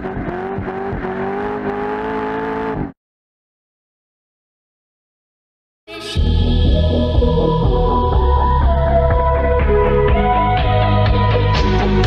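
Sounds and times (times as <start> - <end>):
car engine at high revs: 0.0 - 3.0.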